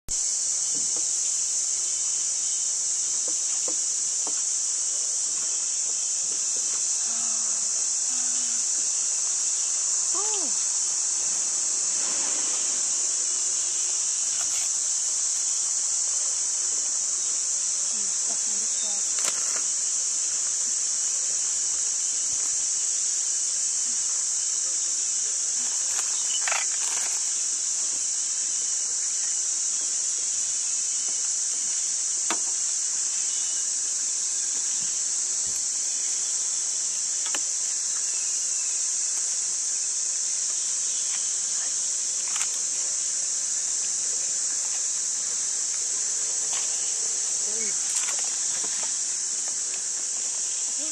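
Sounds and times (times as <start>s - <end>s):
insect chorus buzzing: 0.1s - 50.9s.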